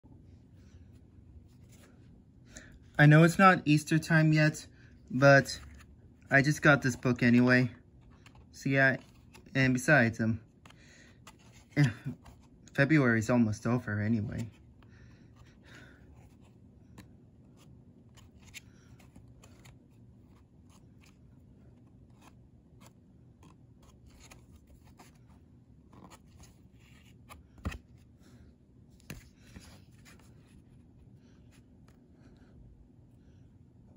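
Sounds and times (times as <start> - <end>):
low steady hum: 0.0 - 33.9
cardboard pages clicking and scraping: 5.4 - 9.8, 10.6 - 12.6, 16.1 - 28.0.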